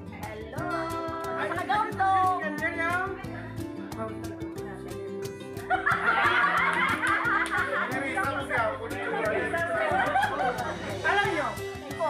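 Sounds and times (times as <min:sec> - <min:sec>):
music with steady beat: 0:00.0 - 0:12.0
group of people laughing: 0:05.7 - 0:11.1.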